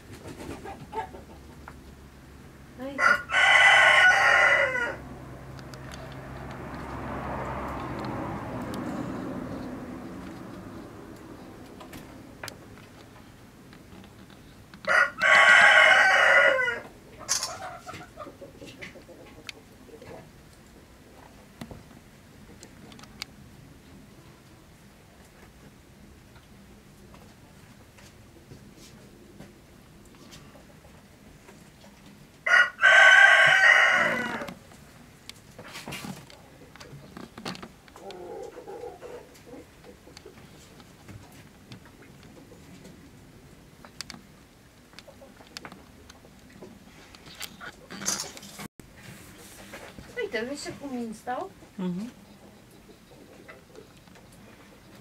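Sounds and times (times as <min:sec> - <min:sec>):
rooster crowing: 0:03.0 - 0:05.2, 0:14.9 - 0:16.9, 0:32.4 - 0:34.6.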